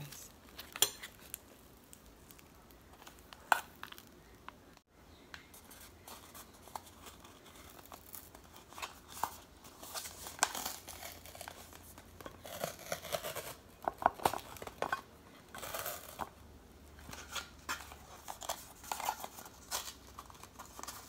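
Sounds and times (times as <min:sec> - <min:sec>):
paper and cardboard tearing: 0:05.9 - 0:14.8.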